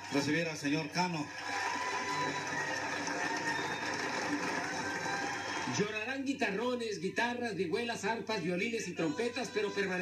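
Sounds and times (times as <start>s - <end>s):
audience applauding: 0.0s - 6.1s.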